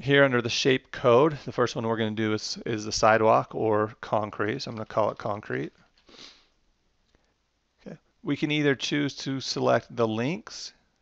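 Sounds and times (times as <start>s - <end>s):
person speaking: 0.0s - 5.8s, 7.9s - 10.8s
nose sniff: 6.1s - 6.5s.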